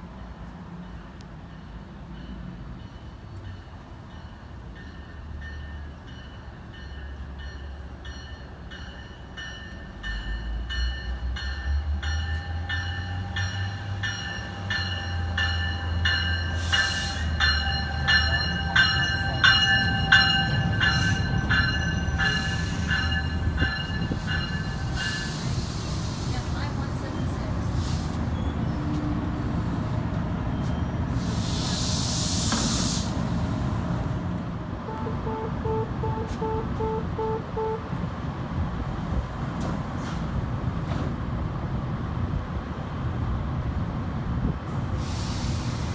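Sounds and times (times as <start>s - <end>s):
train rumble: 0.0s - 45.9s
train bell ringing: 0.8s - 25.4s
air hiss bursts: 25.1s - 26.5s, 31.2s - 33.4s, 44.9s - 45.9s.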